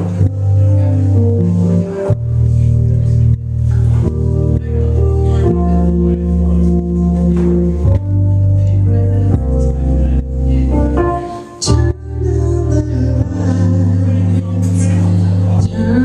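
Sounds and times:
bass line: 0.0s - 16.0s
keyboard chords: 0.0s - 16.0s.

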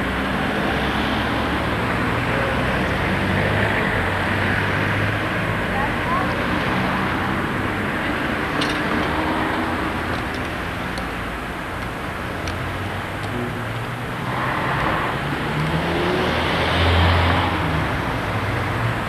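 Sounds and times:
cars driving past: 0.0s - 11.3s, 12.3s - 19.0s.

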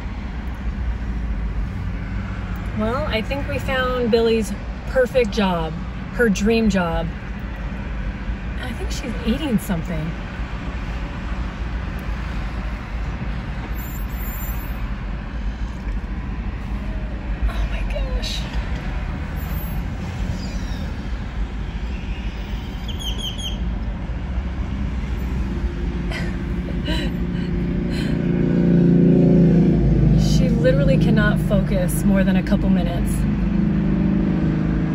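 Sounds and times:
traffic rumble: 0.0s - 34.9s
car passing close by: 27.3s - 31.5s.

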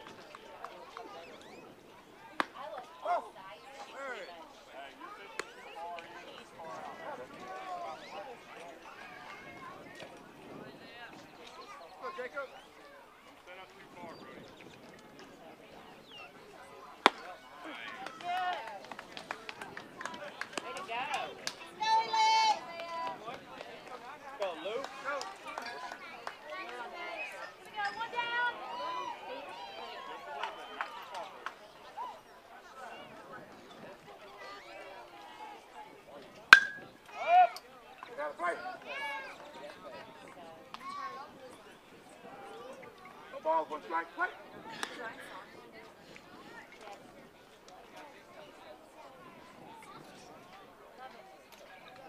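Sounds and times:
bat cracking against ball: 36.5s - 37.0s.

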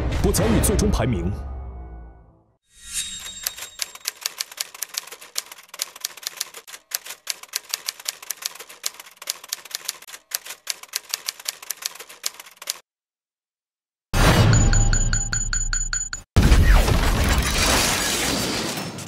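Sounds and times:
typewriter keys clattering: 3.4s - 12.8s.

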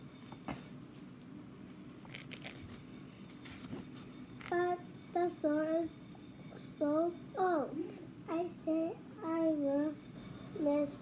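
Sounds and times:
book pages ticking and rustling: 1.9s - 2.8s.

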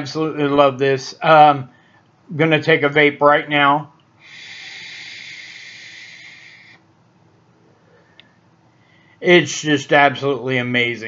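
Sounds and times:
vape airy hiss: 4.2s - 6.9s.

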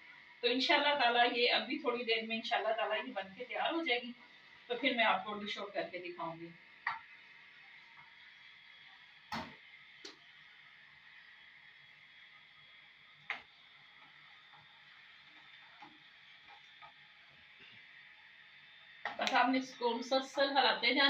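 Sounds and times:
faint steady hiss: 0.0s - 21.0s.

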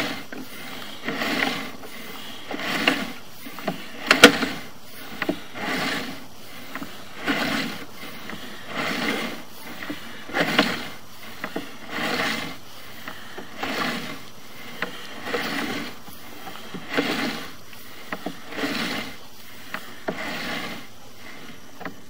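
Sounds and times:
cable rubbing and scraping: 0.0s - 22.0s
small clicks of cable reel: 0.0s - 22.0s.

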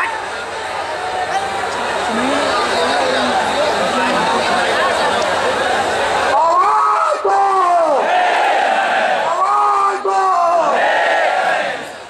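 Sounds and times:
crowd shouting: 0.0s - 12.0s
man shouting into microphone: 6.4s - 8.1s, 9.3s - 10.8s.

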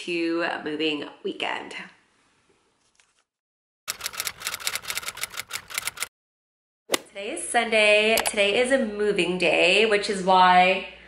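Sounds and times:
rapid typing key clicks: 3.9s - 6.1s.

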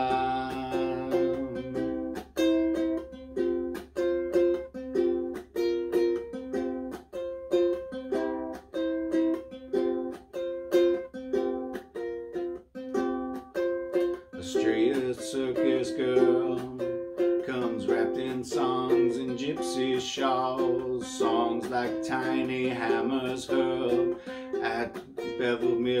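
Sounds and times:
ukulele strumming: 0.0s - 26.0s.

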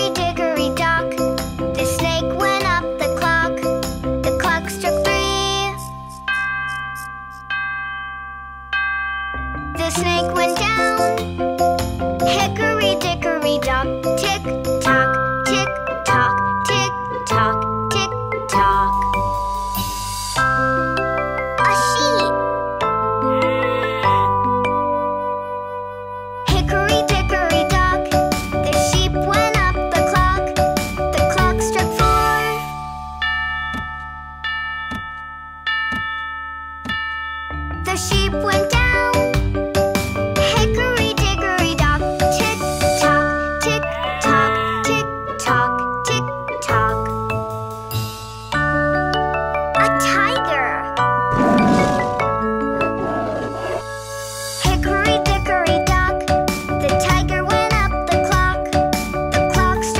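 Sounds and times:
clock chime striking: 6.1s - 11.0s, 32.0s - 39.0s.

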